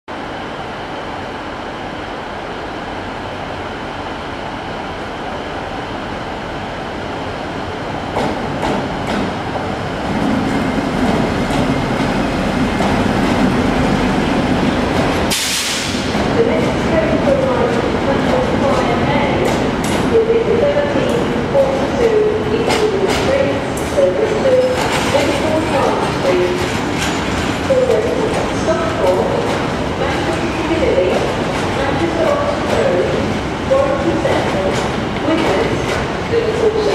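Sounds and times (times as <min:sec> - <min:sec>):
diesel locomotive engine: 0:00.1 - 0:36.9
loud burst of noise: 0:15.1 - 0:16.2.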